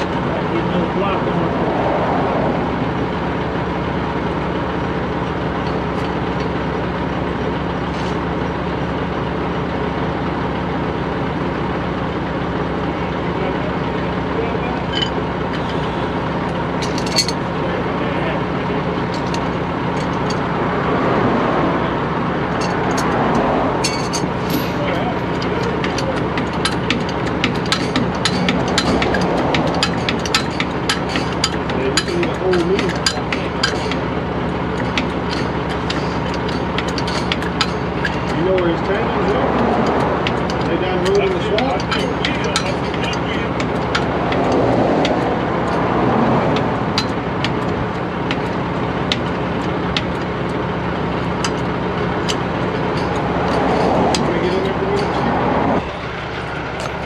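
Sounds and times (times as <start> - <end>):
truck engine idling: 0.0 - 57.0.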